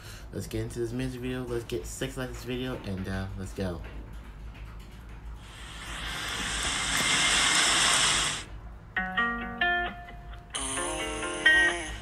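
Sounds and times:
swelling hiss: 5.4 - 8.6.

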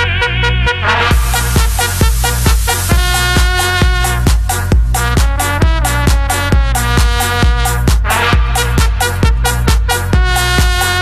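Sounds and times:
electro dance music: 0.0 - 11.0
kick drum: 1.1 - 11.0
bright hissy high layer: 1.2 - 3.7.

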